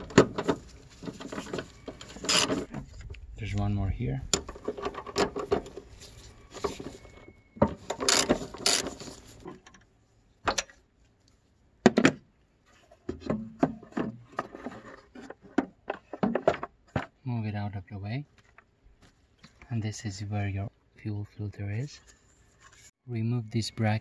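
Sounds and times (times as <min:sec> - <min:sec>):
plastic housing clicks and scrapes: 0:00.0 - 0:03.3.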